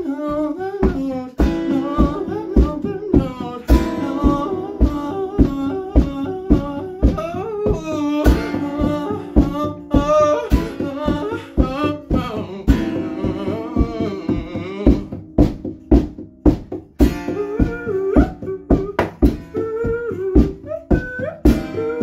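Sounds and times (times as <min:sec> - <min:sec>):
person singing: 0:00.0 - 0:16.1, 0:17.0 - 0:22.0
strummed acoustic guitar: 0:00.0 - 0:22.0.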